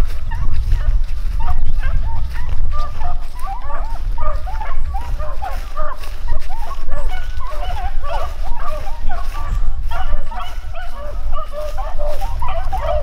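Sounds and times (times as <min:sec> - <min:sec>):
low rumble: 0:00.0 - 0:09.9
dogs baying: 0:00.0 - 0:13.0.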